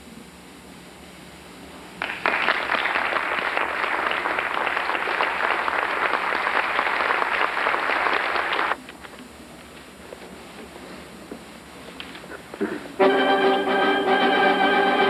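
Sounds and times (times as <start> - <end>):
audience applauding: 2.0 - 8.8.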